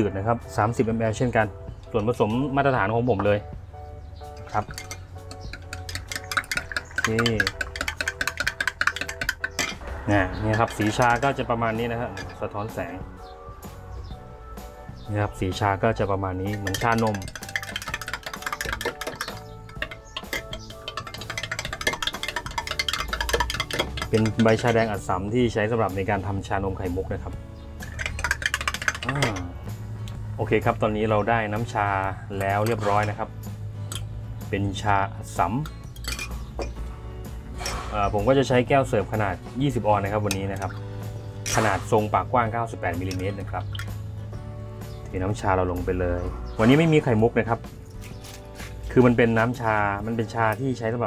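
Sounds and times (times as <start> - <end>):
background music: 0.0 - 51.0
metal spoon clinking against glass: 4.4 - 9.8, 10.5 - 11.4, 16.4 - 25.0, 27.8 - 29.5, 35.6 - 36.7.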